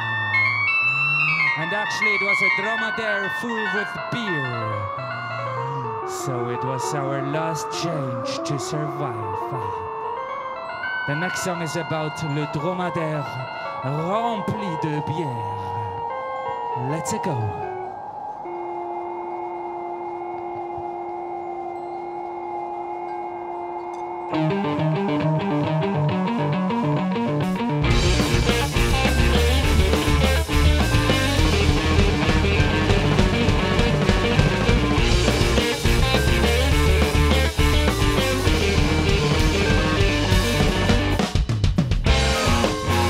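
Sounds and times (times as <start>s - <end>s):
bass: 0.0s - 6.2s, 24.4s - 43.0s
held guitar tones: 17.7s - 41.2s
quick repeating riff: 24.4s - 43.0s
rock band playing loudly: 24.4s - 43.0s
drum kit: 27.8s - 43.0s.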